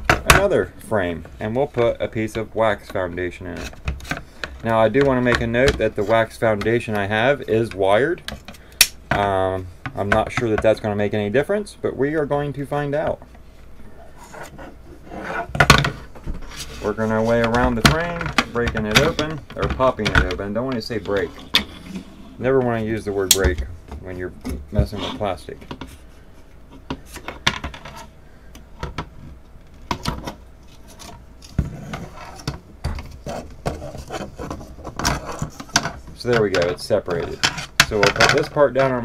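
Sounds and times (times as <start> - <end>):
plastic rubbing: 0.0 - 9.3, 13.9 - 28.2, 28.8 - 39.0
metal tool scraping plastic: 30.0 - 38.9.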